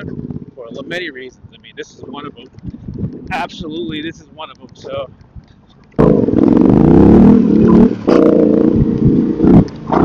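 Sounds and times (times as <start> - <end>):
motorcycle engine revving: 6.0 - 10.0.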